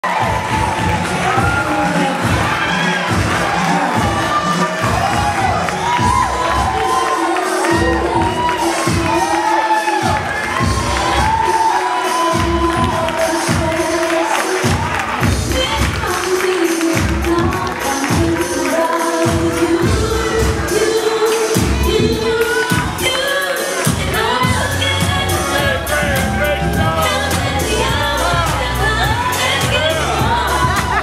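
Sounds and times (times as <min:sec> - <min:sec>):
crowd cheering and shouting: 0:00.0 - 0:31.0
music with a steady beat: 0:00.1 - 0:31.0.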